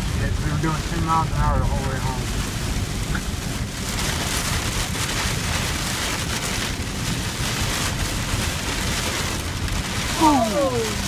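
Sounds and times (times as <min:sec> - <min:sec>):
heavy rain on truck roof: 0:00.0 - 0:11.0.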